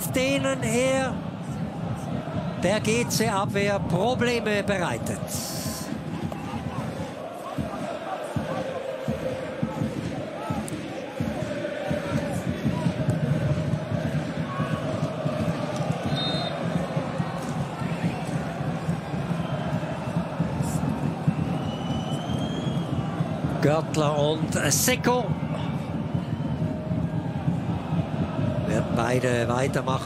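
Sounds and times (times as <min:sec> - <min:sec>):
crowd singing and chanting: 0:00.0 - 0:30.0.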